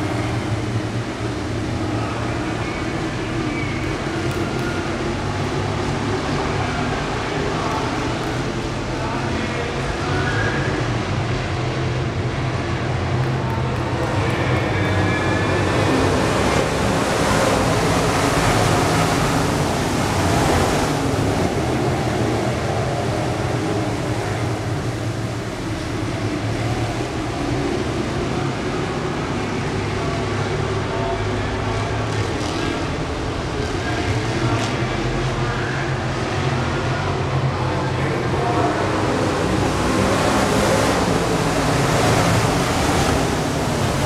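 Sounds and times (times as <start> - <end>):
race car engines roaring: 0.0 - 44.0.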